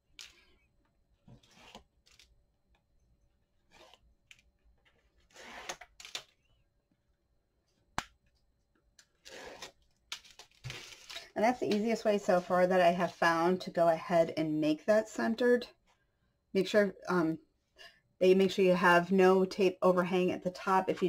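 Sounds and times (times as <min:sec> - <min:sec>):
tape liner peeling: 0:01.4 - 0:02.4, 0:03.7 - 0:04.5, 0:05.2 - 0:06.4.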